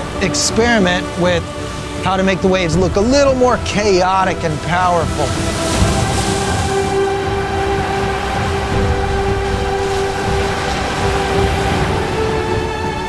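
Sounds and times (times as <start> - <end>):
music of long held notes: 0.0 - 13.0
waves splashing on rocks: 0.0 - 13.0.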